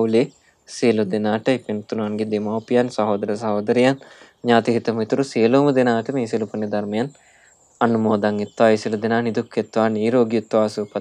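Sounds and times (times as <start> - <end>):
faint high chirp: 0.0 - 11.0
man giving sermon: 0.0 - 11.0.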